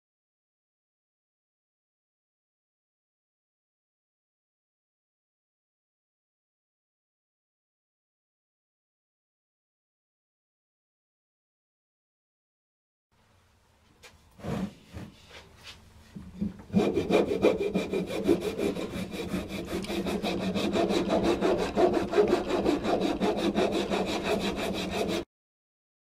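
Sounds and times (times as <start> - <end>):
hand rasp scraping wood: 14.4 - 15.5, 16.4 - 25.3.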